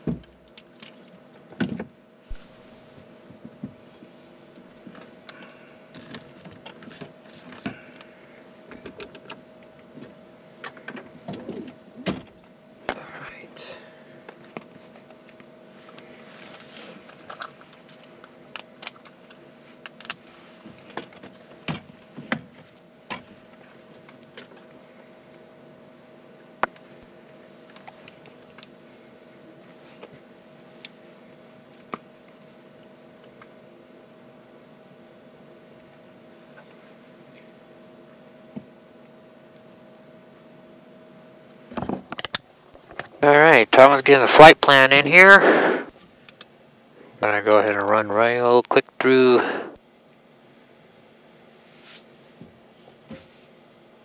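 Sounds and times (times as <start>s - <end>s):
steady cockpit hum: 0.0s - 54.0s.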